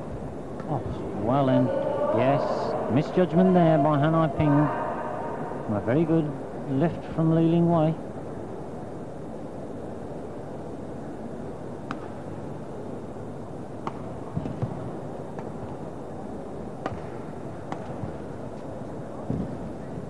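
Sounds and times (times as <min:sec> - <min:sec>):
arena crowd hum: 0:00.0 - 0:20.0.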